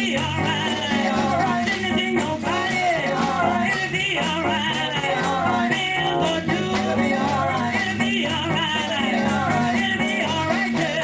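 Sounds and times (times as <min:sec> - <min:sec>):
instrumental accompaniment: 0:00.0 - 0:11.0
choir singing: 0:04.9 - 0:07.8.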